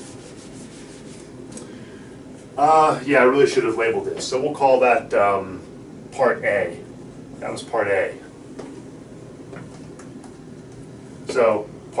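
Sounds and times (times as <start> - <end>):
eraser wiping whiteboard: 0.0 - 1.4.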